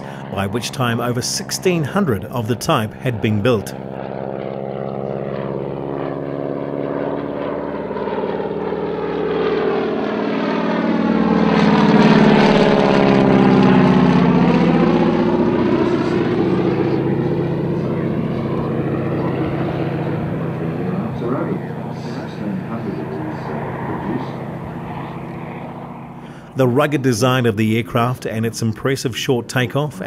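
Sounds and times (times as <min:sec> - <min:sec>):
propeller plane flying past: 0:00.0 - 0:30.0.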